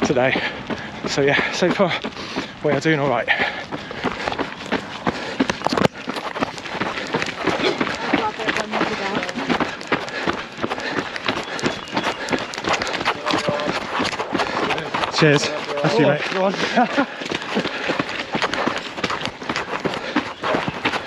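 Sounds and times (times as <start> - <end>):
footsteps on wet gravel: 0.0 - 21.0
voices: 0.0 - 21.0.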